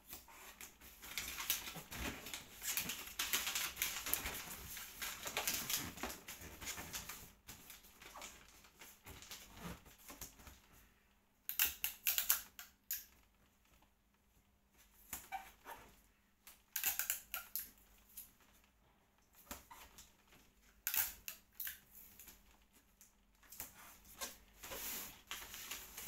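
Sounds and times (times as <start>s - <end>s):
wrapping paper crinkling: 0.3s - 10.4s.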